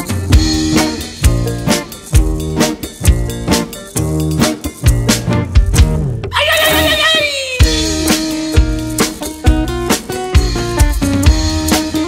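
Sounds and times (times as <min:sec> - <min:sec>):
drums: 0:00.0 - 0:12.0
guitar: 0:00.0 - 0:12.0.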